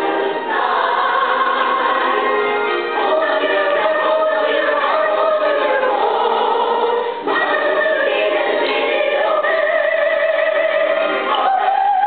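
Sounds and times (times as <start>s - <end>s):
chorus singing long notes: 0.0s - 12.0s.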